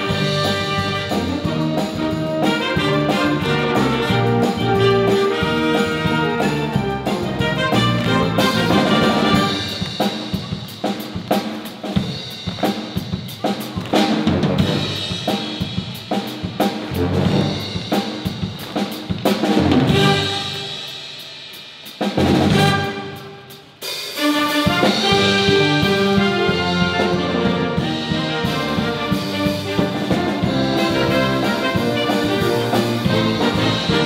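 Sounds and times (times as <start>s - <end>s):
loud brass section: 0.0s - 9.8s, 19.8s - 21.0s, 22.3s - 34.0s
concert band playing upbeat music: 0.0s - 34.0s.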